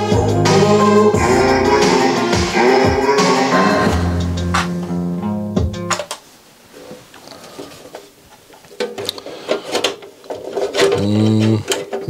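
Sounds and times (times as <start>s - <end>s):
music playing: 0.0s - 6.0s.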